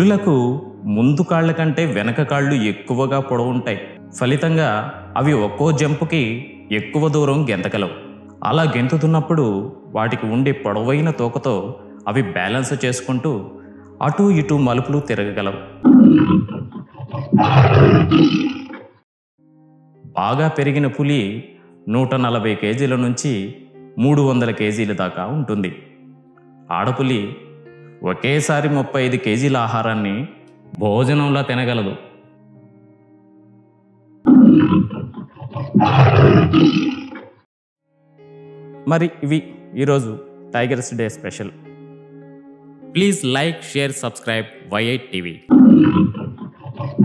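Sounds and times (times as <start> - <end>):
faint background music: 0.0 - 18.7, 19.5 - 37.0, 38.0 - 47.0
tiger roaring: 15.8 - 18.8, 34.3 - 37.2, 45.5 - 47.0.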